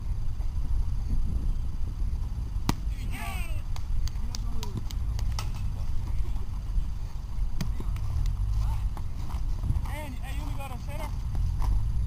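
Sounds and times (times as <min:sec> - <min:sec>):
low rumble on microphone: 0:00.0 - 0:12.0
light footsteps: 0:03.7 - 0:12.0.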